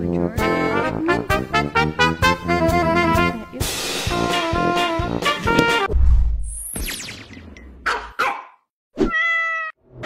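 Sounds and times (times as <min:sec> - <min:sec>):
cat meowing: 0:09.0 - 0:09.8.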